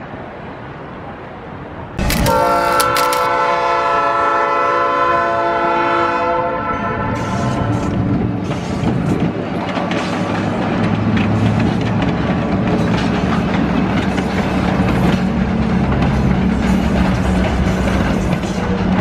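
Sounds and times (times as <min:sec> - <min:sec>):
locomotive air horn blast: 0:02.1 - 0:08.1
locomotive engine rumbling: 0:07.0 - 0:19.0
train wheels clattering: 0:07.4 - 0:19.0.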